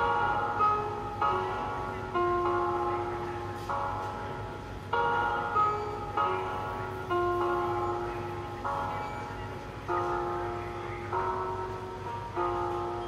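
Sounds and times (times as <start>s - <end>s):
spooky piano chords: 0.0s - 13.0s.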